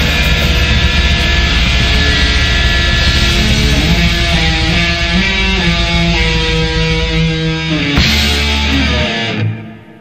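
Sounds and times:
punk rock music: 0.0 - 10.0.

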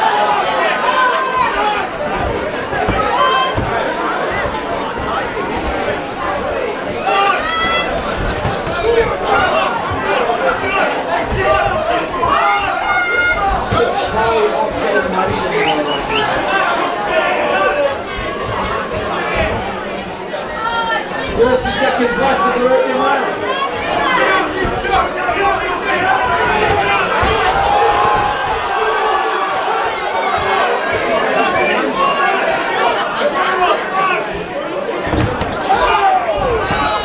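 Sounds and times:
crowd chattering: 0.0 - 37.0.

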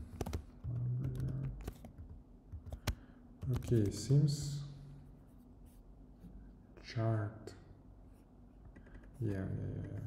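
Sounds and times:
computer keyboard keystrokes: 0.0 - 4.1, 8.6 - 9.2.

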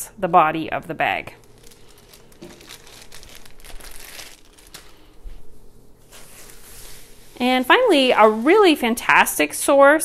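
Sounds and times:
plastic bags crinkling: 1.0 - 9.6.

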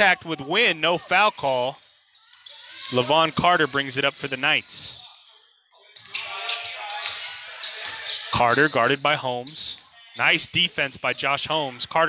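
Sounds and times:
voices in gym: 0.0 - 12.0.

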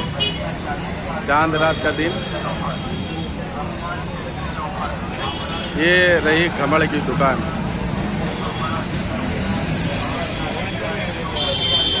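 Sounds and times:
auto-rickshaw and motorbike engines: 0.0 - 12.0
crowd chattering: 0.0 - 12.0.

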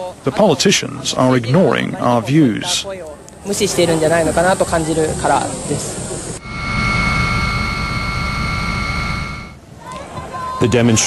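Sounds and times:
mechanical roar with high whine: 4.5 - 9.6.

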